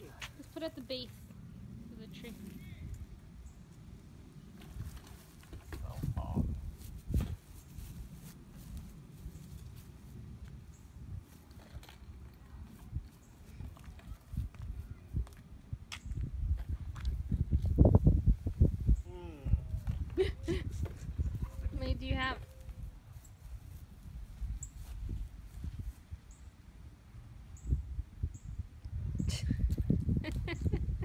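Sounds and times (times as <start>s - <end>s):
gusty wind on microphone: 4.6s - 9.4s, 12.9s - 26.4s, 27.6s - 31.0s.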